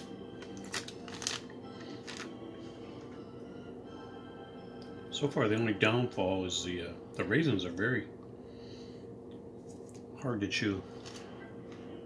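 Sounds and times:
plastic package crinkling: 0.4s - 2.3s.

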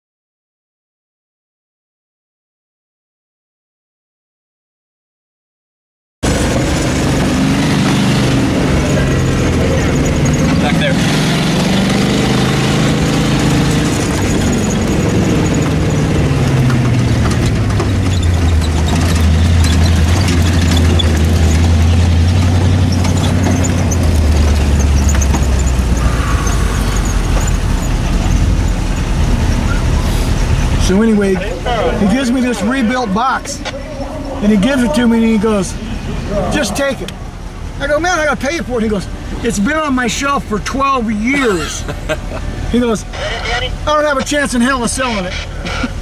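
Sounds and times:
car engine running: 6.2s - 46.0s.

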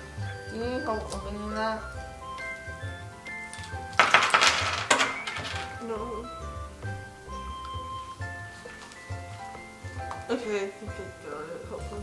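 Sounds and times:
coins clattering onto a table: 3.6s - 5.8s.

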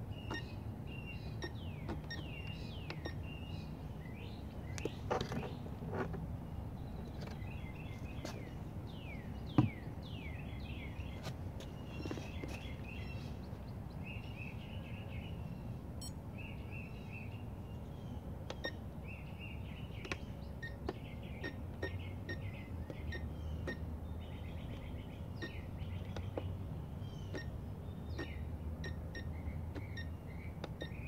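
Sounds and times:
small birds chirping: 0.0s - 31.0s.

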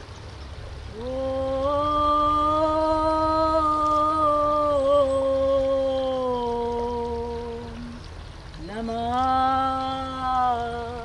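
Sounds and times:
person chanting in long notes: 0.9s - 8.0s, 8.6s - 11.0s.

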